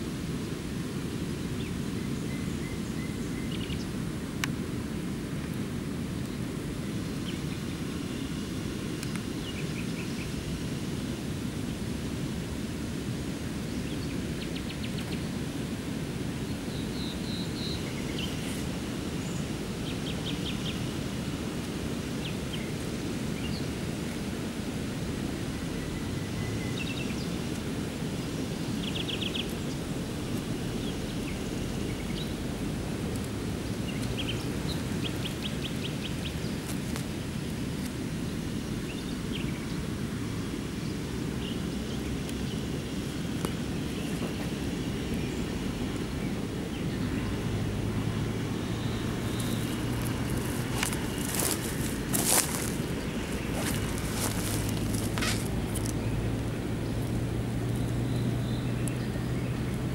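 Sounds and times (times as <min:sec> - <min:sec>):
river rushing: 0:00.0 - 0:59.9
songbirds chirping and trilling: 0:25.2 - 0:59.9.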